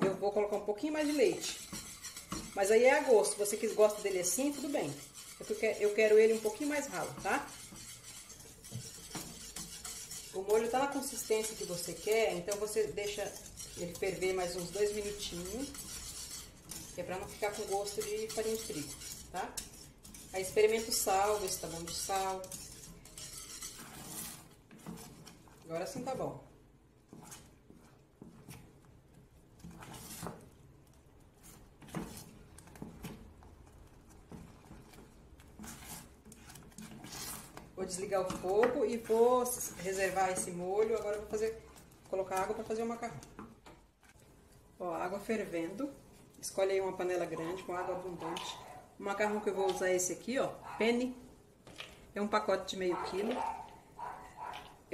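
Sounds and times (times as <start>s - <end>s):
whisk stirring sauce: 0.2s - 50.4s
whisk clinking against pan: 0.8s - 25.4s.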